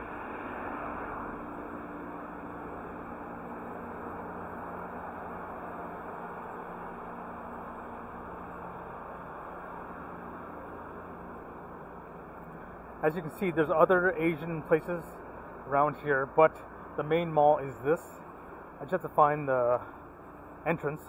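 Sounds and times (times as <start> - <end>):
even rush of outdoor noise: 0.0 - 21.0.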